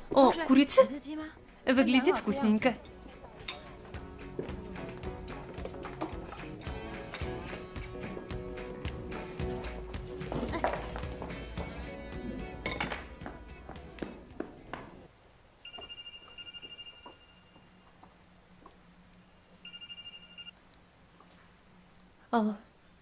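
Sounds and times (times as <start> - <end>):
music: 1.8 - 15.0
mobile phone ringtone: 15.6 - 17.9, 19.4 - 20.5.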